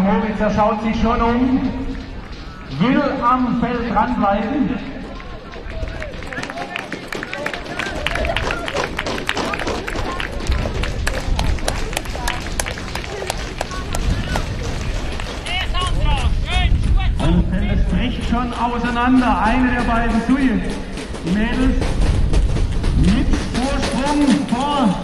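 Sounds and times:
runners' spiked footfalls on track: 1.2 - 25.0
spectators clapping: 5.0 - 17.1.

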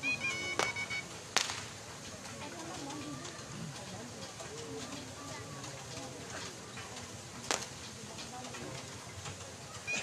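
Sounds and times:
distant crowd voices: 0.0 - 10.0
sharp whip crack: 1.4 - 1.8, 7.5 - 7.7.

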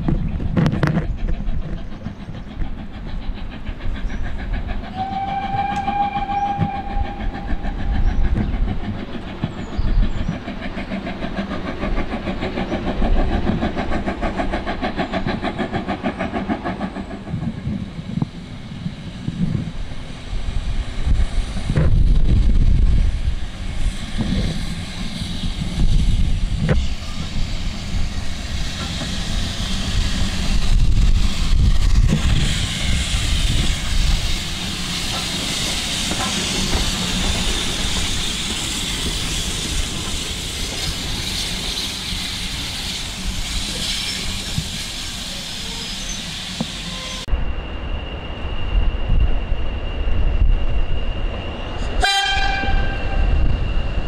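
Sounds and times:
steam locomotive exhaust beats: 0.0 - 54.0
steam hissing: 1.0 - 54.0
steam whistle blast: 4.9 - 7.6, 46.8 - 47.3, 51.9 - 53.4.

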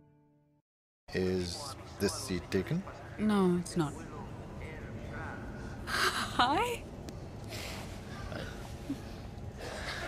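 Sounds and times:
low background hum: 1.1 - 10.0.

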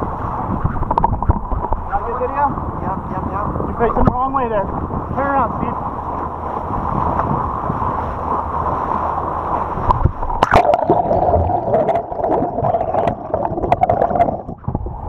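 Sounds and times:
underwater gurgling and bubbling: 0.0 - 15.0
water rushing along a boat: 0.0 - 15.0
sharp underwater clicks: 0.5 - 2.0, 9.8 - 11.1
splash into water: 8.7 - 14.4.

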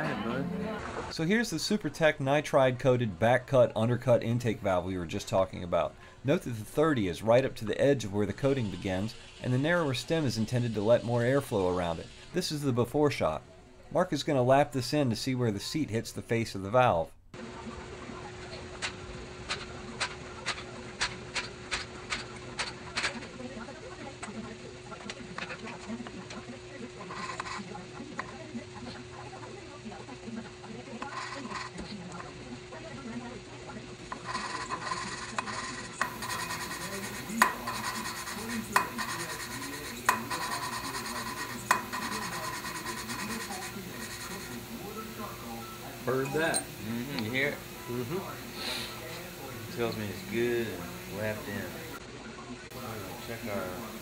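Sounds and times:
valve lapping gritty rasping: 34.1 - 52.0.

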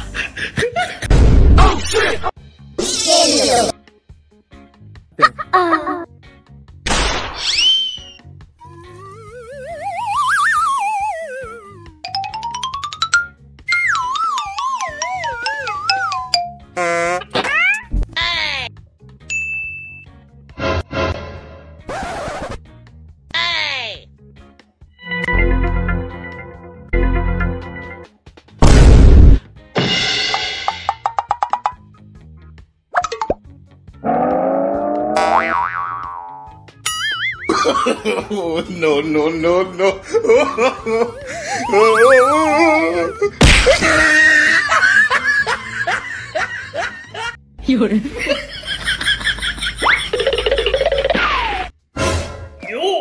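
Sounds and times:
person laughing: 5.2 - 6.1, 37.5 - 38.7, 39.7 - 47.4, 48.0 - 51.7
high ding sound effect: 19.3 - 20.1, 36.8 - 37.5
sudden loud hit: 28.6 - 30.4.

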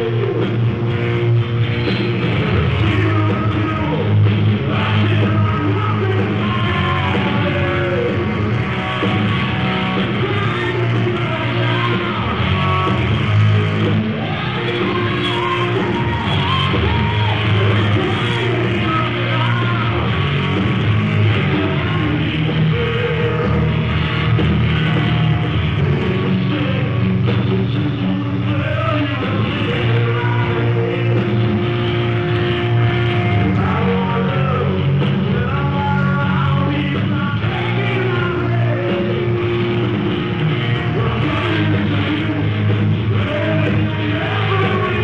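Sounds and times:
rock band playing live: 0.0 - 45.0.

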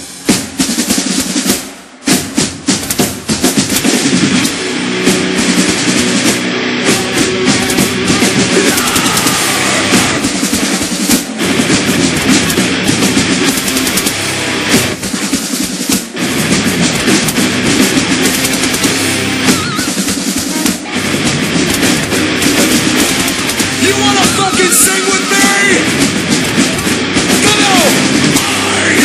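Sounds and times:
heavy drum-kit drumming: 0.0 - 29.0
heavy metal band playing: 0.0 - 29.0
marching snare drum: 0.0 - 29.0.

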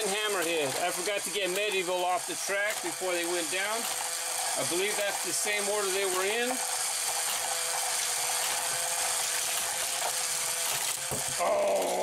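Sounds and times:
electric motor whirring: 0.0 - 12.0
plastic track rattling: 0.0 - 12.0.

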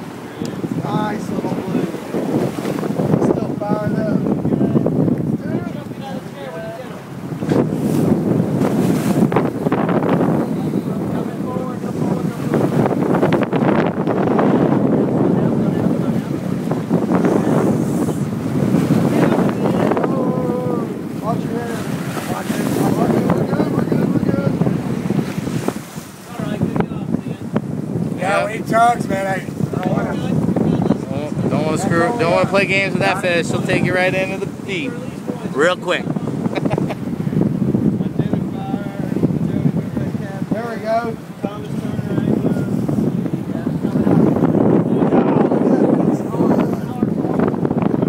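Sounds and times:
boat engine: 0.0 - 48.0
churning wake: 0.0 - 48.0
wind buffeting microphone: 0.0 - 48.0
faint voices: 14.6 - 25.1, 26.1 - 47.8.

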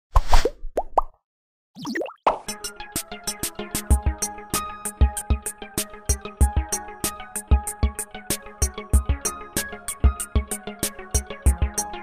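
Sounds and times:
rising bloops: 1.8 - 2.4
bubbly gliding flourish: 1.8 - 2.5
upbeat music with plucked notes: 2.3 - 12.0.

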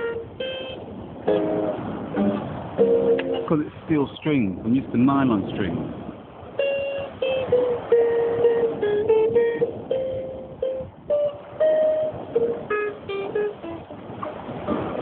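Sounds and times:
acoustic guitar plucked melody: 0.0 - 3.6, 6.5 - 15.0.

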